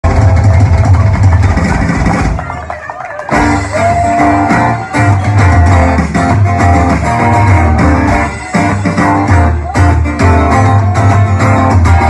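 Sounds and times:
drum roll: 0.0s - 9.2s.

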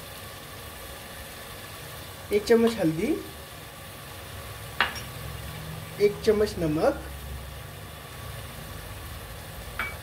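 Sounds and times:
masala sizzling in pot: 0.0s - 10.0s.

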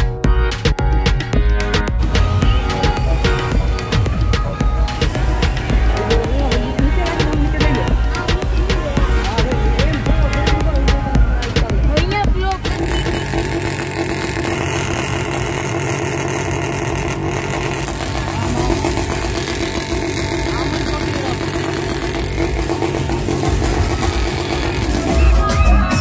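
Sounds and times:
crowd voices: 0.0s - 26.0s
motorcycle engines running: 0.0s - 26.0s
music with heavy bass beat: 0.0s - 26.0s.

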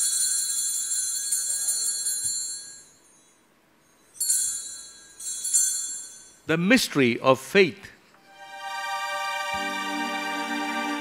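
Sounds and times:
altar bells jingling: 0.0s - 6.5s.

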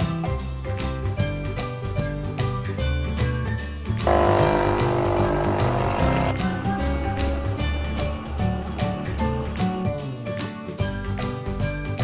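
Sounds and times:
background music: 0.0s - 12.0s
small pump buzzing: 4.1s - 6.5s.

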